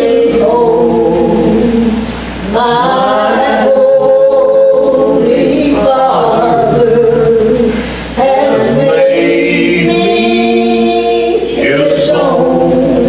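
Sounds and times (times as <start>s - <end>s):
women singing gospel: 0.0s - 13.0s.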